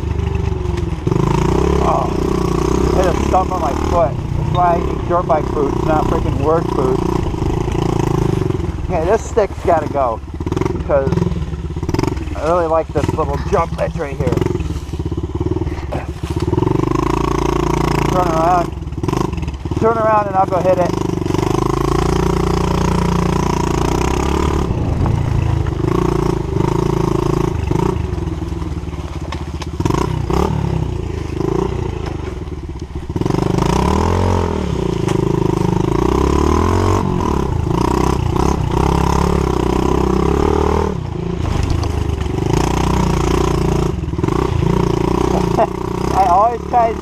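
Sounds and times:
bike rattling over bumps: 0:00.0 - 0:47.0
motorbike engine revving: 0:00.0 - 0:47.0.

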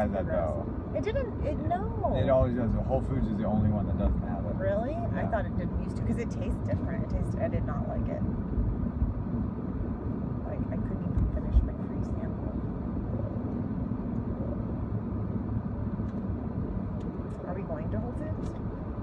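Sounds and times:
car cabin road and engine rumble: 0:00.0 - 0:19.0.

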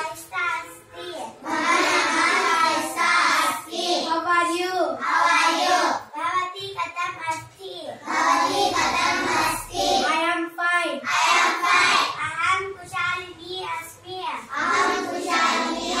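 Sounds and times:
children chanting in unison: 0:01.2 - 0:06.1, 0:08.0 - 0:10.1, 0:11.0 - 0:12.2, 0:14.5 - 0:16.0.

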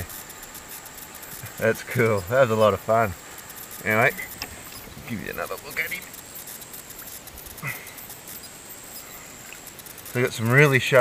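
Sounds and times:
faint ticking: 0:00.0 - 0:11.0
high-pitched insect drone: 0:00.0 - 0:11.0.

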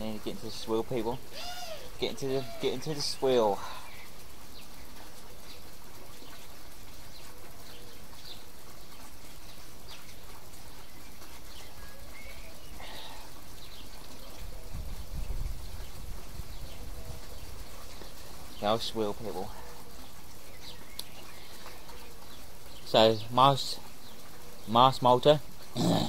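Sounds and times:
outdoor background hiss: 0:00.0 - 0:26.0
faint bird chirps: 0:07.1 - 0:14.8.

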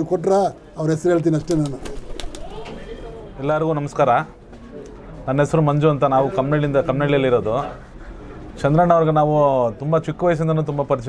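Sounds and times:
man speaking: 0:00.0 - 0:04.3.

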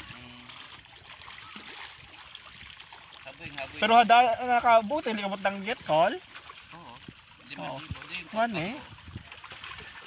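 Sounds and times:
fish splashing at water surface: 0:00.0 - 0:10.0.

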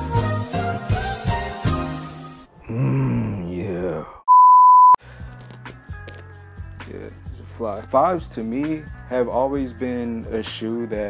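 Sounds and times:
cartoon voice groaning: 0:02.6 - 0:04.2.

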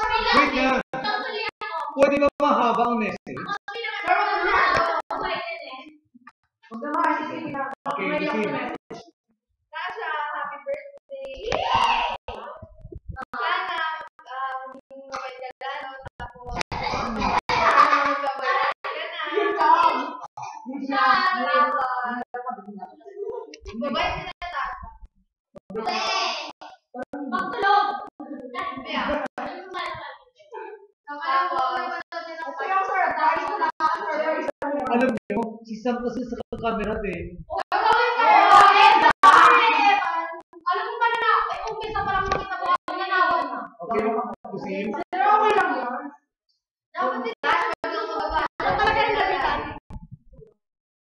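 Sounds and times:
people talking: 0:00.0 - 0:06.0, 0:06.7 - 0:09.0, 0:09.8 - 0:25.0, 0:25.7 - 0:46.1, 0:47.0 - 0:50.1
people talking and singing: 0:47.0 - 0:50.4.

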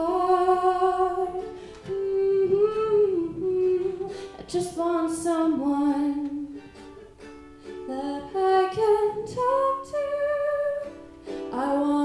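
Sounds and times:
woman humming a melody: 0:00.0 - 0:06.5
soft ukulele: 0:00.0 - 0:12.0.

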